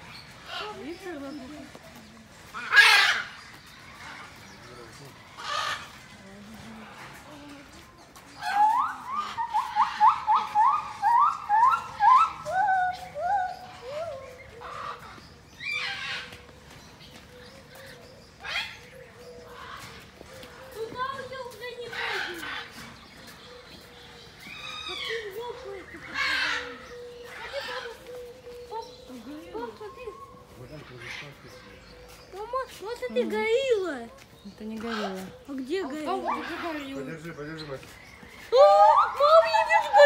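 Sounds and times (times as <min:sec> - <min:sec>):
animal calls: 0:02.5 - 0:04.6, 0:08.4 - 0:16.6, 0:17.3 - 0:33.8, 0:38.1 - 0:40.0
rasping squawk: 0:02.6 - 0:03.4.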